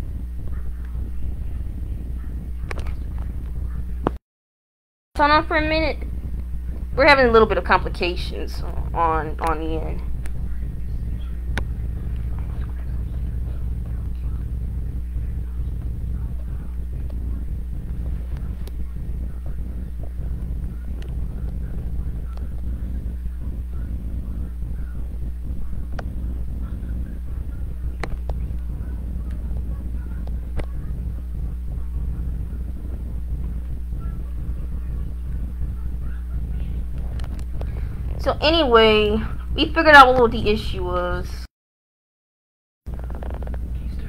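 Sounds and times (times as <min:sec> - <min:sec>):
steady low hum: 0:00.0 - 0:04.2, 0:05.2 - 0:41.5, 0:42.9 - 0:44.0.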